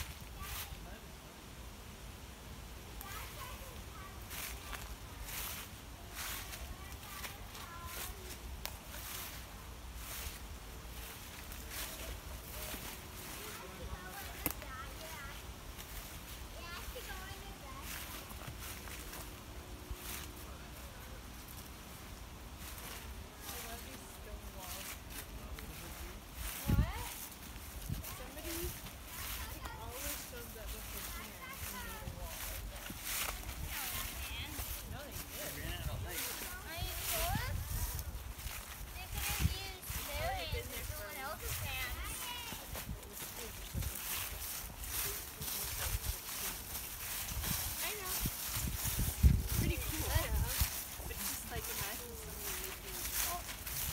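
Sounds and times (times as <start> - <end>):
footsteps crunching dry leaves: 0.0 - 1.1, 2.6 - 53.9
faint indistinct voices: 0.0 - 1.5, 2.7 - 53.9
people talking far off: 2.9 - 9.4, 11.0 - 21.6, 22.6 - 53.9.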